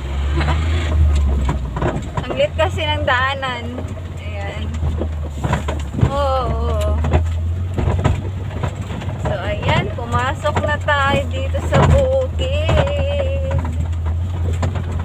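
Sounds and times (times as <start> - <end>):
knocks from bumps: 0.0 - 15.0
vehicle engine low drone: 0.0 - 15.0
people's voices: 2.2 - 4.8, 6.0 - 7.2, 9.2 - 13.8.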